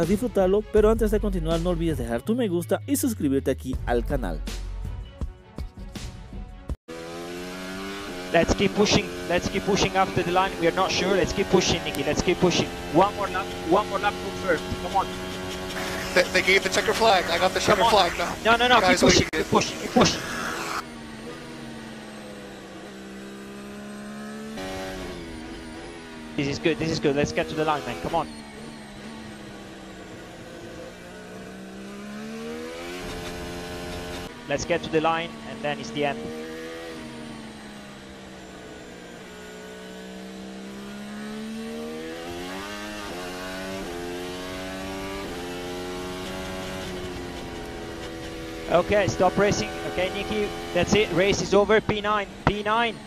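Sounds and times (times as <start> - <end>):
racing car engine high pitch: 6.9 - 53.0
radio hiss: 15.7 - 20.8.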